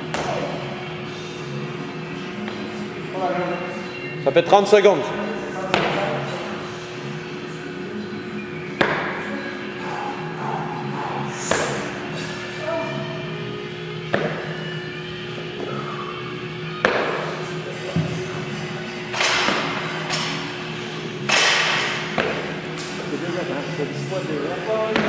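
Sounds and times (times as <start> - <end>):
background music: 0.0 - 25.0
dumbbells thudding: 8.8 - 9.3, 14.1 - 14.6, 21.3 - 22.7.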